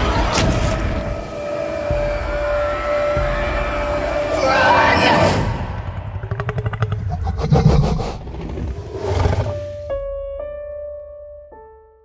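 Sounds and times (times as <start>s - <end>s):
film music: 0.0s - 12.0s
dinosaur growling and roaring: 5.1s - 9.9s.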